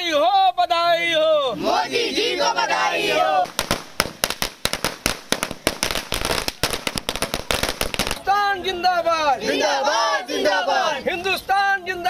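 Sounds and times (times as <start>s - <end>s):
firecrackers banging: 3.4s - 8.4s.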